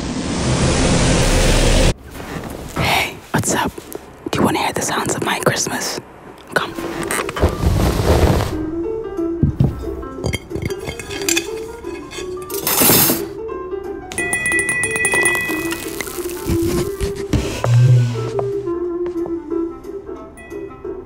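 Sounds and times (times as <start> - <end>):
metal cutlery clinking on table: 10.2 - 13.3
slow melodic background music: 13.2 - 21.0
clear ringing tone: 14.1 - 16.6.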